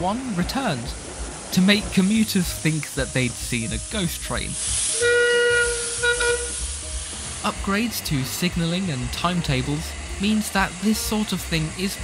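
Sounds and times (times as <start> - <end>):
steam hissing: 0.0 - 12.0
steam whistle blasts: 4.7 - 7.0.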